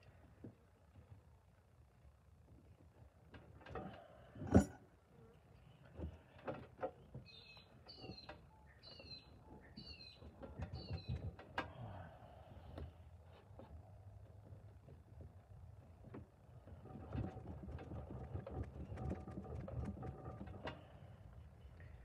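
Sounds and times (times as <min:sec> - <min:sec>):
bird calling: 0:07.2 - 0:11.2.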